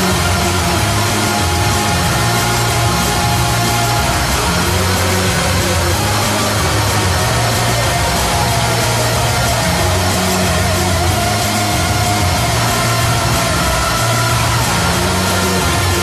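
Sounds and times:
bass line: 0.0s - 16.0s
distorted guitar wall: 0.0s - 16.0s.

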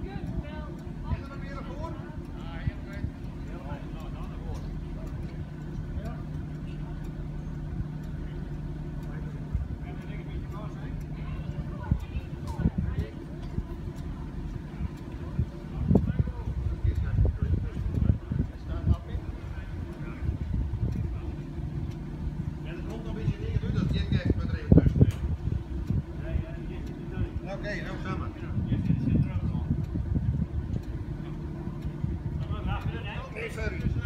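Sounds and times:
motorboat engine humming: 0.0s - 34.0s
people talking: 0.0s - 34.0s
people's voices: 0.0s - 34.0s.

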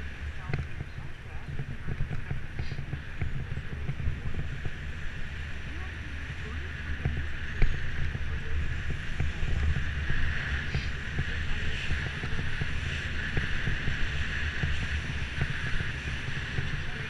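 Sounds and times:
bike rattles and clicks: 0.0s - 17.0s
wind rumbling on microphone: 0.0s - 17.0s.

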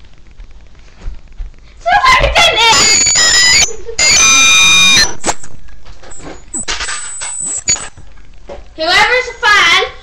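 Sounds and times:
knocks and rustles of movement: 0.0s - 2.5s, 5.1s - 8.8s
child screaming: 1.9s - 3.6s.

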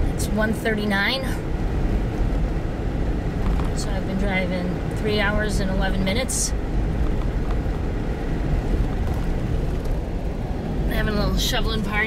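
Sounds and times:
car engine and tyres rumbling: 0.0s - 12.0s.

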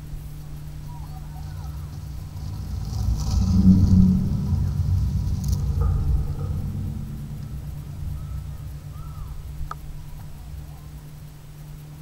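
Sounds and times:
skate wheels rolling over bricks: 0.8s - 6.1s.

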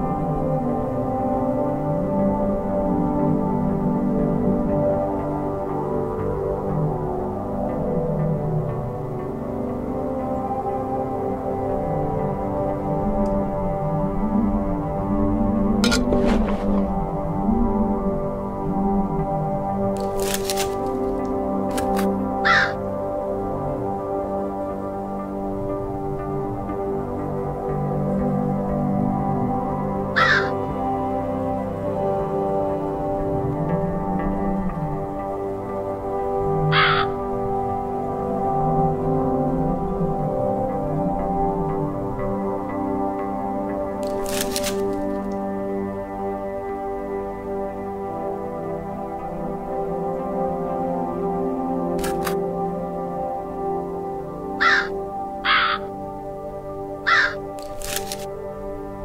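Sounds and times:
ambient music with sustained tones: 0.0s - 59.0s
crow cawing: 22.4s - 22.8s, 30.2s - 30.6s, 36.7s - 37.2s, 54.6s - 55.9s, 57.0s - 57.5s.

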